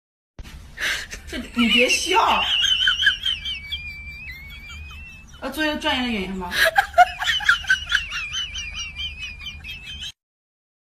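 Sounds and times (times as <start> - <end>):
bird warbling trill: 2.5 - 5.9.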